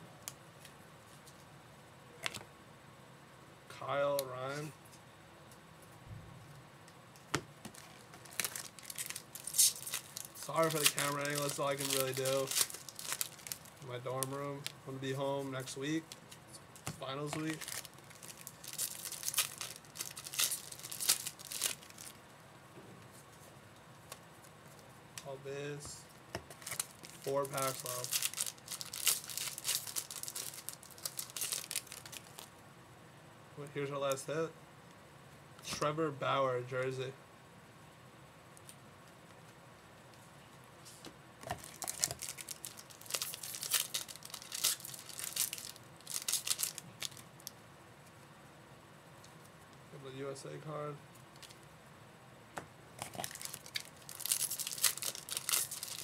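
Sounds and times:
foil wrapper tearing and crinkling: 7.7 - 14.3, 17.3 - 22.2, 26.5 - 32.5, 41.5 - 47.5, 53.0 - 56.0.

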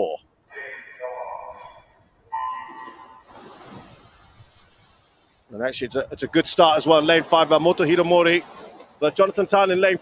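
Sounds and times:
water splashing: 2.7 - 10.0.

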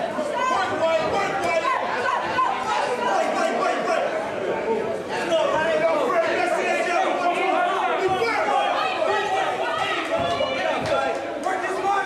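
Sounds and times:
overlapping people chattering: 0.0 - 12.0.

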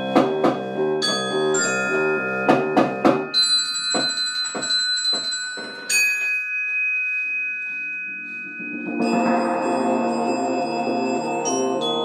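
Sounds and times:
glockenspiel notes ringing: 0.0 - 12.0
high bell-like note: 0.0 - 12.0.

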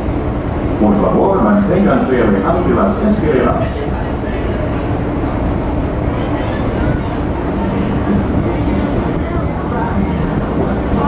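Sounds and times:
ferry engine rumble: 0.0 - 11.0.

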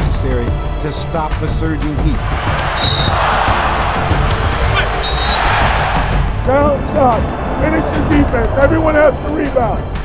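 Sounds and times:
background music: 0.0 - 10.0
arena crowd noise: 2.2 - 8.9.

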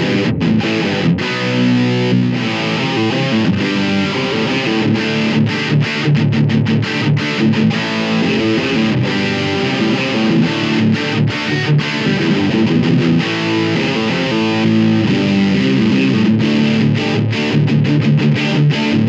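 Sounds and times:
distorted electric guitar riffs: 0.0 - 19.0.

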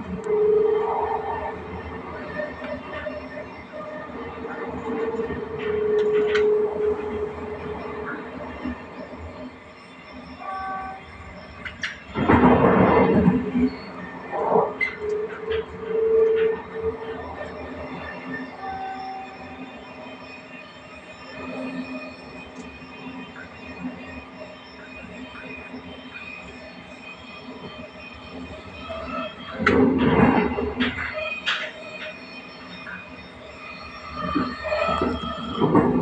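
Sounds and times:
train running on track: 0.0 - 36.0.

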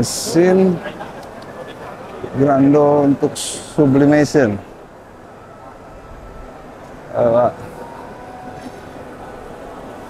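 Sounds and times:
faint chatter: 0.0 - 10.0
machines running: 0.0 - 10.0.

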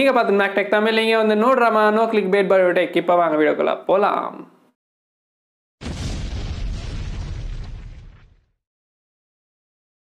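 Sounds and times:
explosion-like boom with deep rumble: 5.8 - 8.6.

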